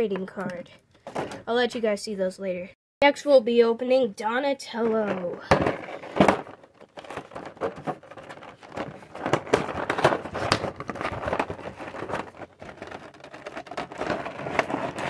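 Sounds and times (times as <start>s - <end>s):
plastic and cardboard packaging crinkling: 5.0s - 15.0s.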